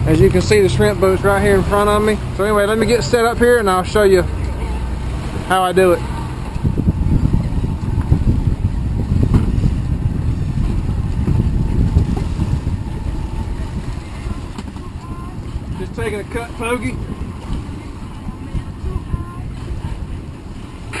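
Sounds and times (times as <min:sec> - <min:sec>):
outboard motors rumbling: 0:00.0 - 0:21.0
wind and water noise: 0:00.0 - 0:21.0.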